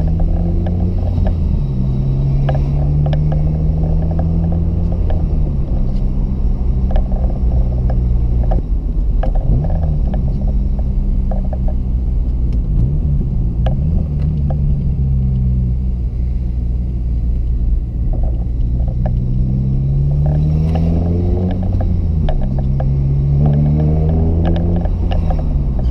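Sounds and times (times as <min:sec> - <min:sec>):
car exhaust drone: 0:00.0 - 0:25.9.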